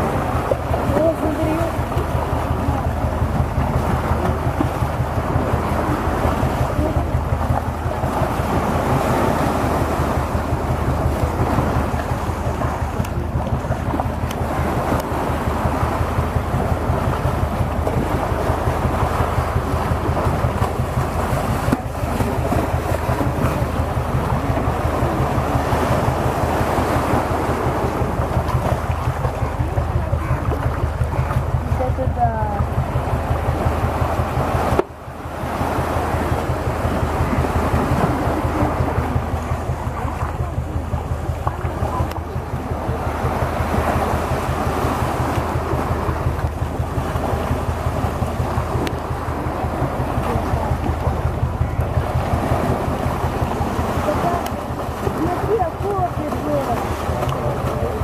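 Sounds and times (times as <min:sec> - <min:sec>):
low pulsing throb: 0:00.0 - 0:58.0
surf washing and splashing: 0:00.0 - 0:58.0
wind on microphone: 0:00.0 - 0:58.0.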